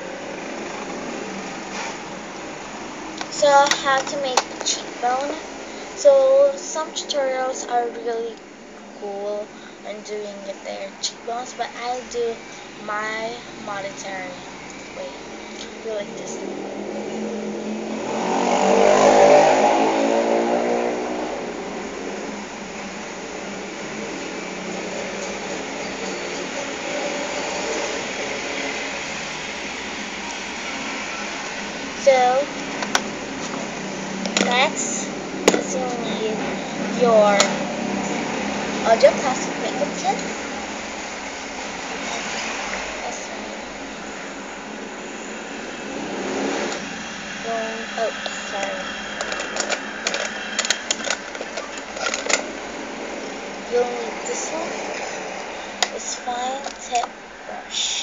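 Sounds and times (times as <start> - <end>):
electric fan whooshing: 0.0 - 58.0
steady low hum: 0.0 - 58.0
vehicle engine passing by: 13.4 - 56.2.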